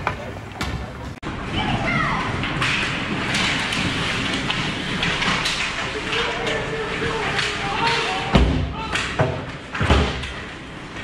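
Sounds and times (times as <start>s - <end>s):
people shouting: 6.1s - 9.2s.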